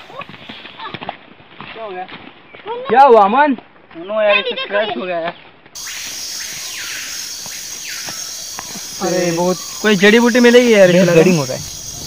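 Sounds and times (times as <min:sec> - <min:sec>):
insects droning: 0:05.8 - 0:12.0.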